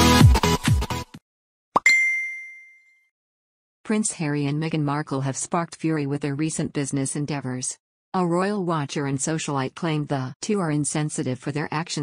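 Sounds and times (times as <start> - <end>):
bright bell-like ding: 1.8 - 3.1.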